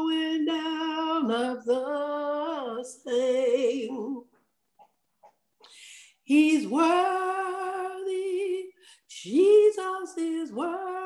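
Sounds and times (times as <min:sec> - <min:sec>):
woman singing: 0:00.0 - 0:04.4, 0:05.8 - 0:11.0.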